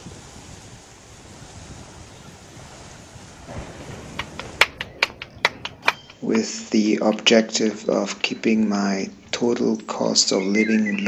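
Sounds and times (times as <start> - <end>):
wind on microphone: 0.0 - 9.7
hands slapping dough: 4.2 - 6.4.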